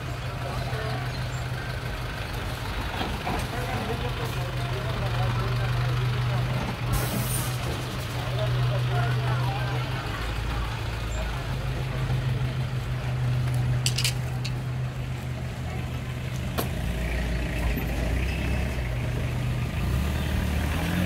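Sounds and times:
people talking: 0.0 - 16.3
minibus engine idling: 0.0 - 20.4.

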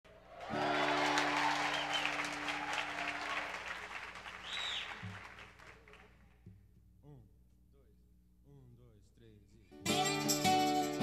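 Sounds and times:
audience applauding and cheering: 0.1 - 6.4
shrill whistles: 0.4 - 6.0.

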